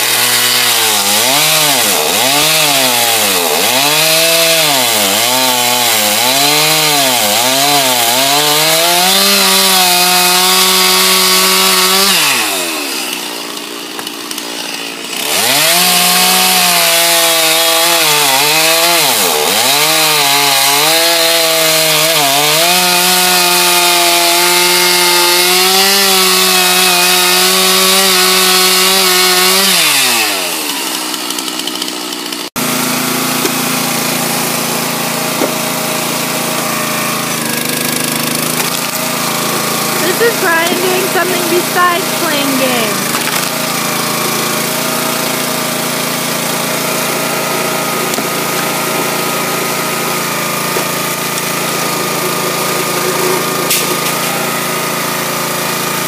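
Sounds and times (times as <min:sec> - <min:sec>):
log splitter engine running: 0:00.0 - 0:23.9, 0:24.6 - 0:56.0
chainsaw cutting log: 0:00.0 - 0:56.0.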